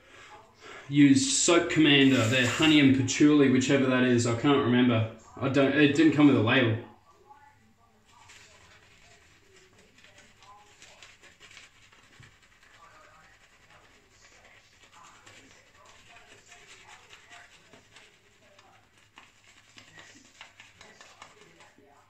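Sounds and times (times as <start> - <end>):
shaving brush swishing on stubble: 1.5 - 3.0, 8.0 - 22.0.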